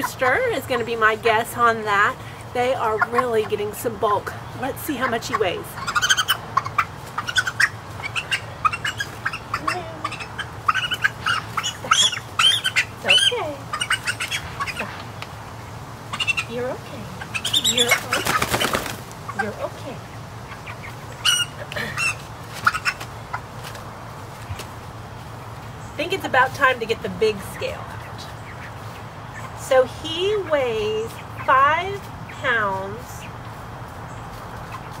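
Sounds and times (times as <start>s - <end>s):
chicks peeping and squawking: 0.0s - 35.0s
wings flapping: 17.4s - 19.6s.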